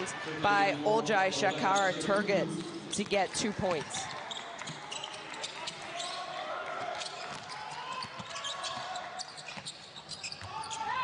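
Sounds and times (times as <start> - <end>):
murmur of crowd and voices: 0.0 - 9.4.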